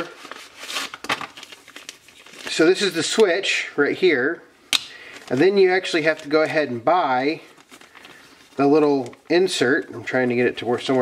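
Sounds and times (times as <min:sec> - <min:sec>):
packaging crinkling and rustling: 0:00.0 - 0:03.4, 0:04.8 - 0:11.0.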